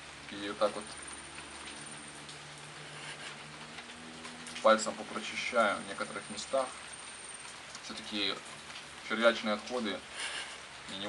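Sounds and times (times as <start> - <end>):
low hum: 0.0 - 9.1
steady background hiss: 0.0 - 11.0.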